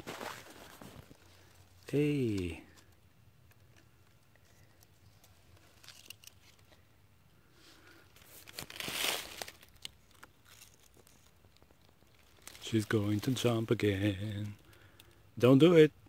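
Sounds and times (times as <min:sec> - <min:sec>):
faint crackles and clicks: 0:00.0 - 0:07.0, 0:07.8 - 0:15.2
rustling crinkling: 0:00.0 - 0:15.2.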